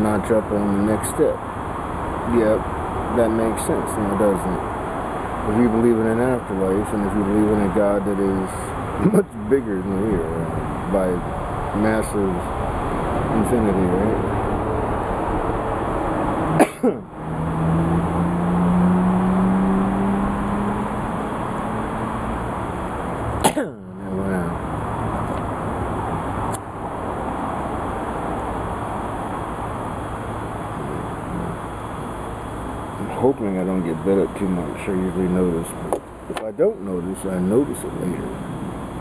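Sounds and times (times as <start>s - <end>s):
low drone: 0.0s - 1.4s, 2.2s - 4.7s, 5.4s - 39.0s.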